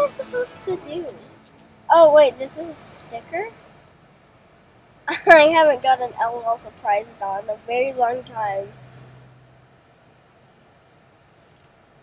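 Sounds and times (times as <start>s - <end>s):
car cabin background noise: 0.0s - 3.8s, 5.1s - 12.0s
low hum: 0.0s - 11.4s.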